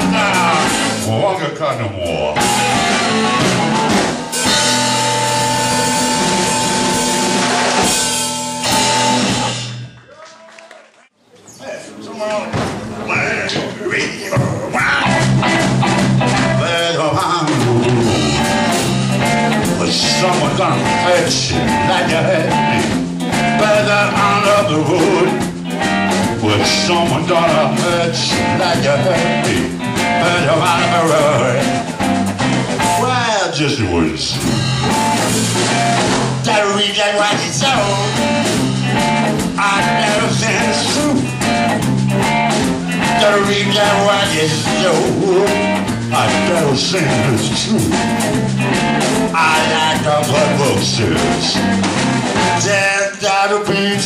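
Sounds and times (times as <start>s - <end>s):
blues-rock band playing: 0.0s - 10.1s, 12.8s - 54.0s.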